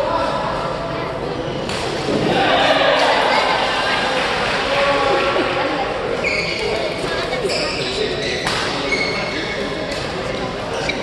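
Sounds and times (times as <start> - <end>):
people talking: 0.0 - 11.0
shoe squeaks on court floor: 6.2 - 10.1, 10.7 - 11.0.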